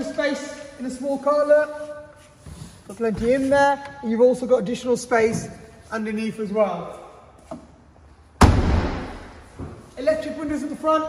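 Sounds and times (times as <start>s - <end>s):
car tailgate slamming shut: 8.4s - 9.2s.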